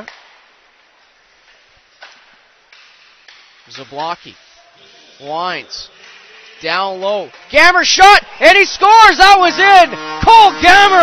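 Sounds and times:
soft arena hiss: 0:00.3 - 0:07.0.

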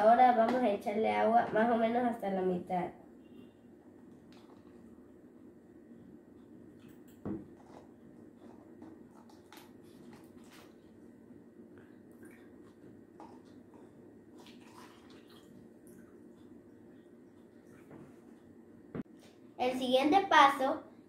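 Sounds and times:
water pouring into plastic cups: 0:14.4 - 0:16.0.

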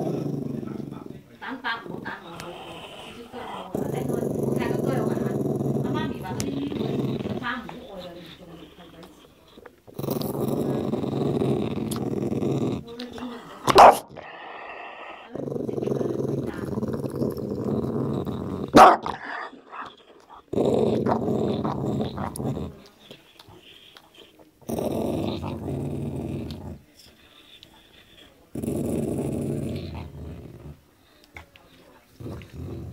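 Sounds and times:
dog growling: 0:00.0 - 0:32.9.

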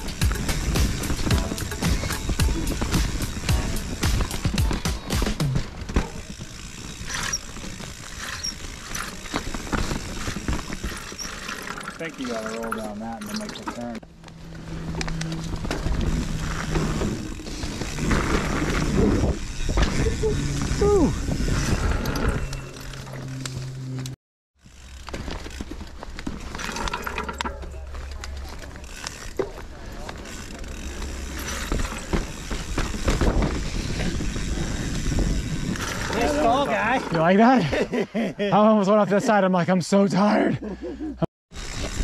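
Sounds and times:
bike rattling and knocking: 0:00.0 - 0:23.9, 0:24.6 - 0:37.6, 0:41.5 - 0:42.0
bike tyres on leaves and dirt: 0:00.0 - 0:37.7, 0:41.5 - 0:42.0.

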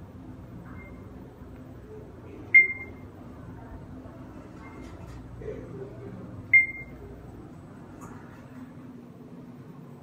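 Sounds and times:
elevator chime beep: 0:02.5 - 0:03.1, 0:06.5 - 0:07.0.

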